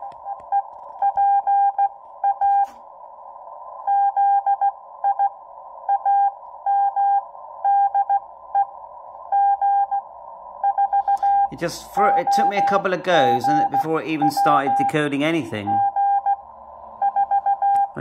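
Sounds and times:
morse code tone: 0:10.6 - 0:16.4
radio hiss: 0:11.0 - 0:15.8.

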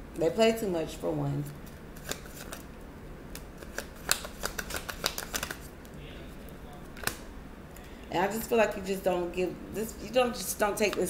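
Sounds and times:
cards being shuffled: 0:01.5 - 0:02.7, 0:03.3 - 0:05.7, 0:06.8 - 0:07.2.

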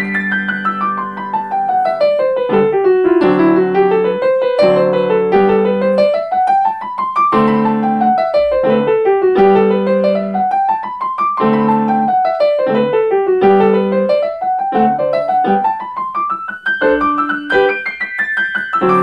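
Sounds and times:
solo grand piano: 0:00.0 - 0:19.0.

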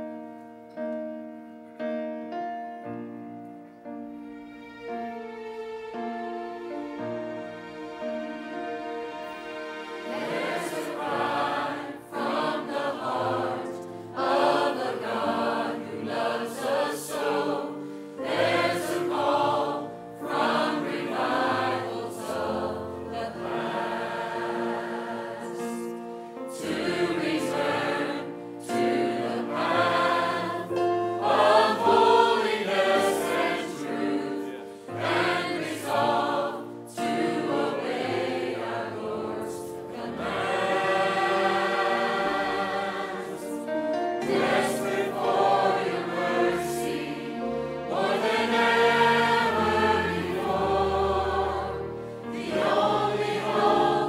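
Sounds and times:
choir singing a hymn: 0:06.7 - 0:54.0.

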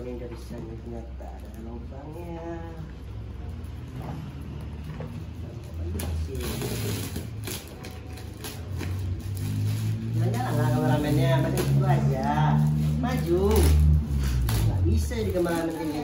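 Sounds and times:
plastic wrapping crackling and ripping: 0:00.0 - 0:16.0.

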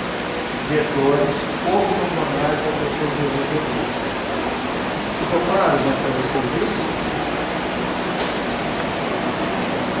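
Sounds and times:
rushing hiss of room noise: 0:00.0 - 0:10.0.

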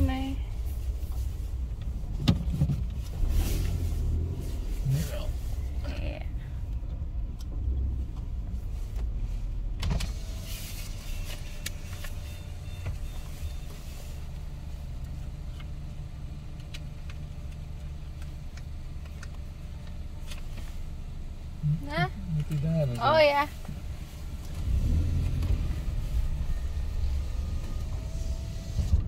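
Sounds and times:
car engine idling: 0:00.0 - 0:29.0.

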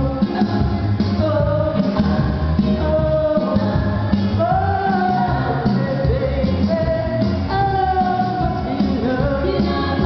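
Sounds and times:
recorded backing track: 0:00.0 - 0:10.0
woman singing karaoke: 0:00.0 - 0:10.0.

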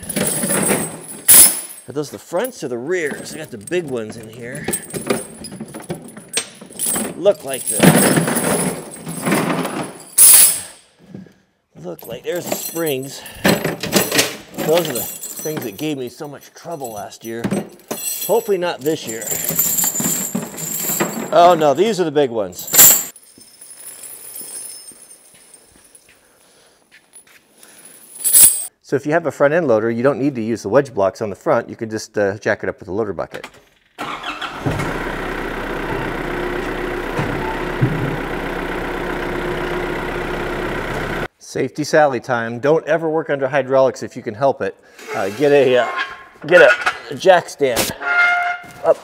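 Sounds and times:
metal tire chains rattling: 0:00.0 - 0:11.0, 0:11.8 - 0:26.1, 0:28.0 - 0:28.7.

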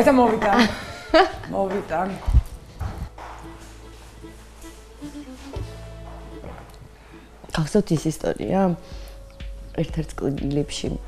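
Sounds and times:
faint background music: 0:00.0 - 0:11.0
footsteps on hard floor: 0:00.1 - 0:08.1.

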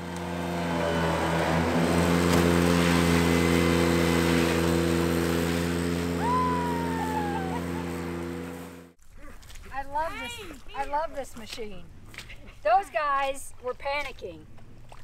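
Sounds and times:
tractor mower engine hum: 0:00.0 - 0:09.0.

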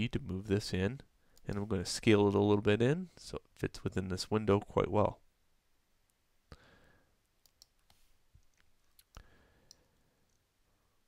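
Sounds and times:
computer mouse clicks: 0:07.4 - 0:10.4.

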